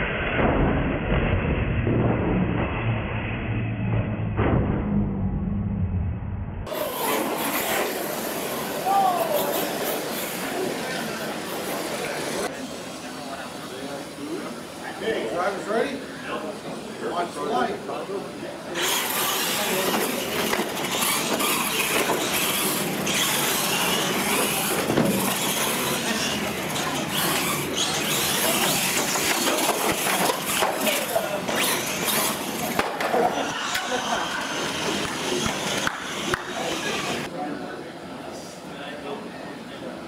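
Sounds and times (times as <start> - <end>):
toy trucks racing on concrete: 6.7 - 13.1, 18.7 - 37.3
people talking: 6.7 - 40.0.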